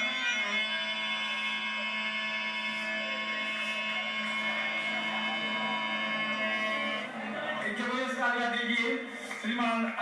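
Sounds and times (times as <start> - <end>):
harmonium chord drone: 0.4 - 8.5.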